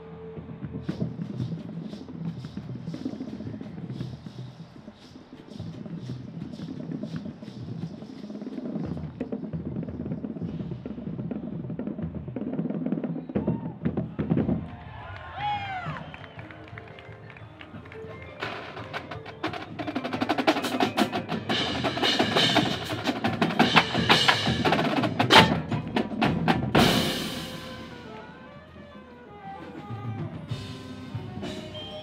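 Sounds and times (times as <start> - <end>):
drums: 0.0 - 32.0.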